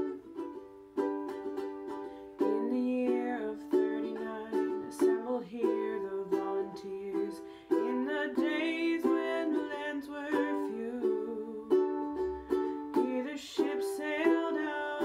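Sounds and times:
ukulele strumming chords: 0.0s - 15.0s.

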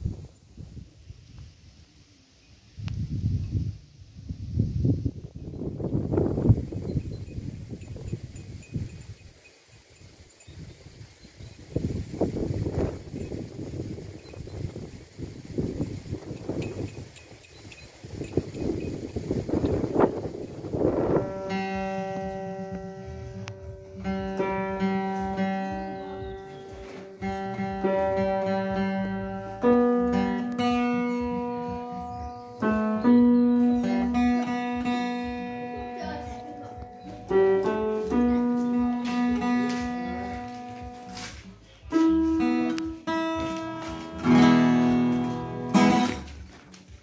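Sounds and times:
wind buffeting microphone: 0.0s - 1.8s, 2.7s - 41.2s
small bells tinkling: 6.5s - 11.8s, 12.8s - 14.8s, 16.0s - 19.7s
acoustic guitar playing: 18.0s - 47.0s.

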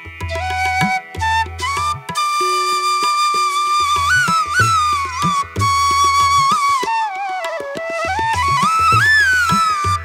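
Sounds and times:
flute-like melody: 0.0s - 10.0s.

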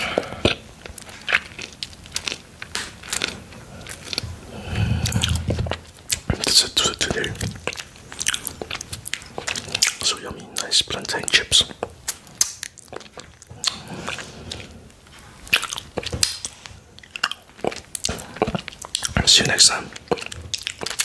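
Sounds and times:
wet mouth sounds: 0.0s - 14.8s, 15.4s - 21.0s
chewing crunchy chips: 0.0s - 21.0s.

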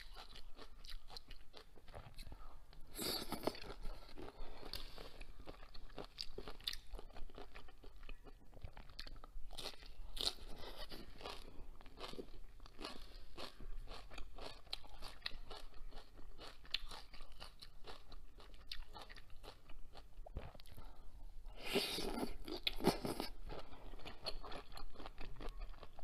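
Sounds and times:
chewing and crunching: 0.0s - 21.0s, 21.7s - 26.0s.

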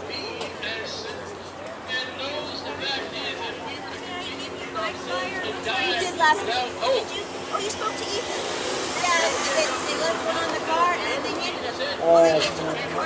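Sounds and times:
people talking over one another: 0.0s - 13.0s.

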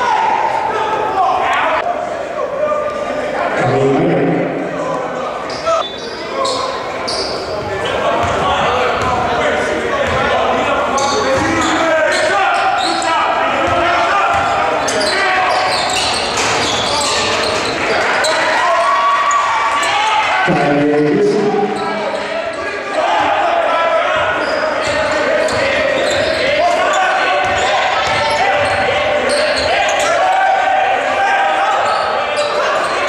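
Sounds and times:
voices of players and spectators: 0.0s - 33.0s.

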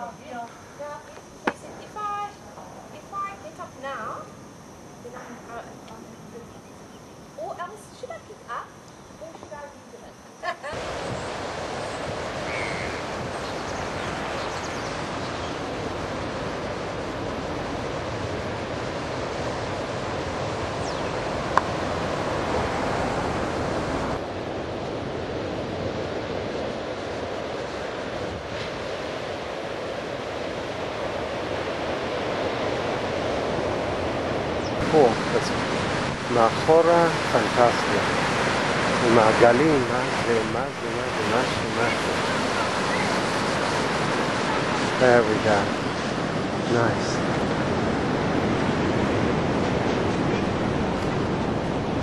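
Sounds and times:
surf breaking on rocky shore: 10.7s - 52.0s.

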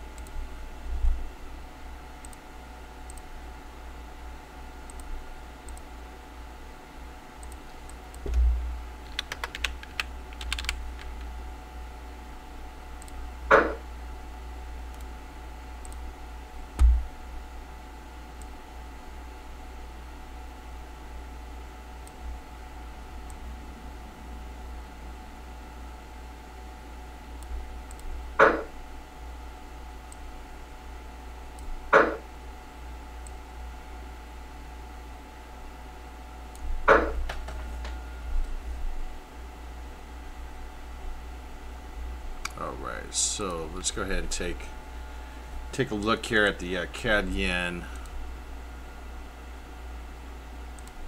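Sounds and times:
low electrical hum: 0.0s - 51.0s.

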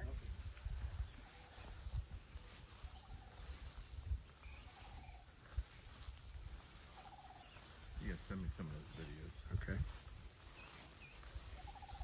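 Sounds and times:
low rumble of wind: 0.0s - 12.0s.

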